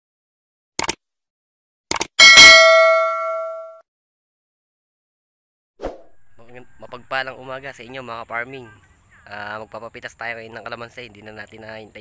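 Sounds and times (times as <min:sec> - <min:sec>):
bell ding: 0:02.2 - 0:03.8.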